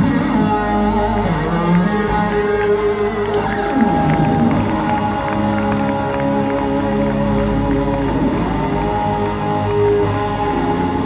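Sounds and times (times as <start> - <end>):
sliding guitar notes: 0.0 - 11.0
crowd cheering: 0.8 - 11.0.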